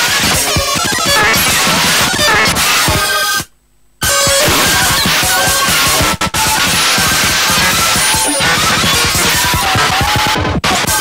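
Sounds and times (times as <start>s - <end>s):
noisy electronic music: 0.0s - 11.0s.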